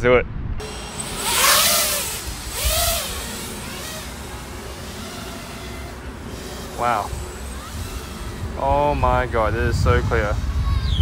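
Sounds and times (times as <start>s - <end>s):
drone motors revving: 0.6s - 11.0s.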